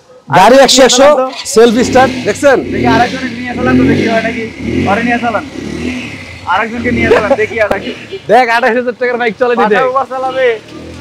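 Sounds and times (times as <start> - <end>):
motorcycle engine running: 1.4 - 8.3.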